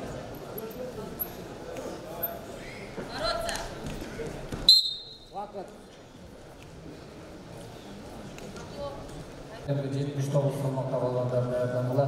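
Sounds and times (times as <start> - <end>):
referee's whistle blast: 4.7 - 5.3.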